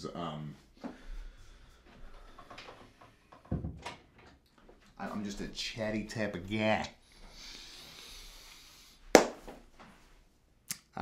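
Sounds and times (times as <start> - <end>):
sharp knock: 9.2 - 9.5.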